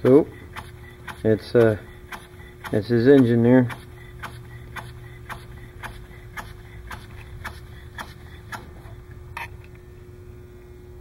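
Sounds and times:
pneumatic engine clicking: 0.0s - 9.5s
steady hum: 0.0s - 11.0s.

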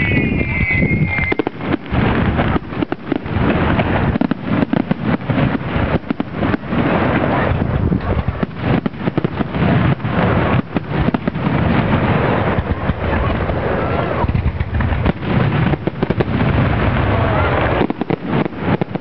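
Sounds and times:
fireworks shells bursting: 0.0s - 19.0s.

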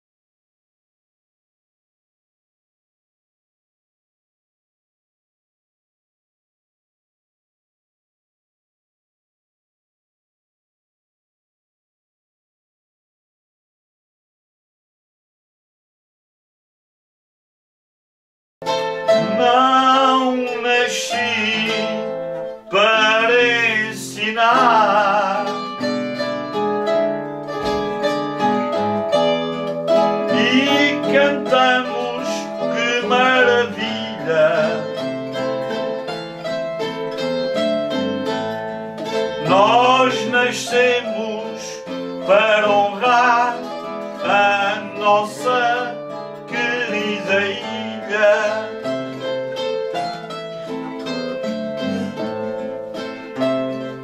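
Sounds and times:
guitars plucking: 18.6s - 54.0s
man singing: 19.1s - 25.9s, 30.2s - 35.6s, 39.1s - 49.4s.

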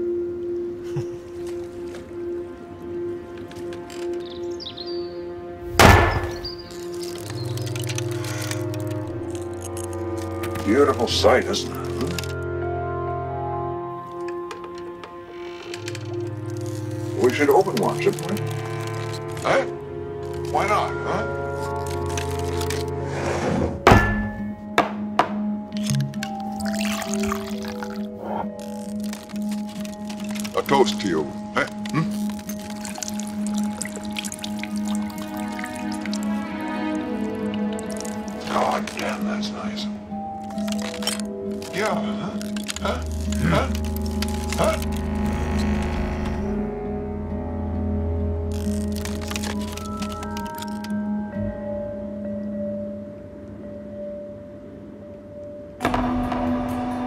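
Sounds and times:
sustained music: 0.0s - 57.0s
hard thunk: 5.7s - 6.5s
brittle glassy cracks and clicks: 6.3s - 12.4s, 15.6s - 19.5s, 21.6s - 23.0s, 25.8s - 36.4s, 37.6s - 39.3s, 40.3s - 45.7s, 48.4s - 51.0s
liquor pouring into a glass: 26.5s - 28.1s.

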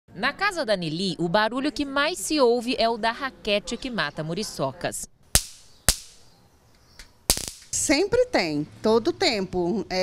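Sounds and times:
mosquito racket cracking: 5.3s - 6.3s, 7.0s - 7.8s.

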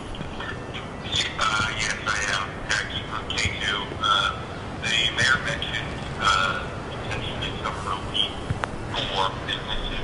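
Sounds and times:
tinny voice over speakerphone: 0.3s - 10.0s.

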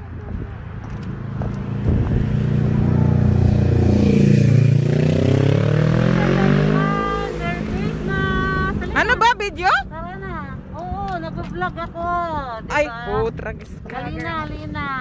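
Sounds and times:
motorcycle passing by: 1.2s - 12.4s.

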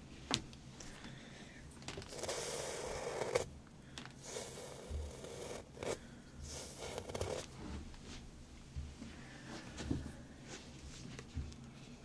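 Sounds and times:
wooden comb scraping through hair: 4.2s - 7.5s.

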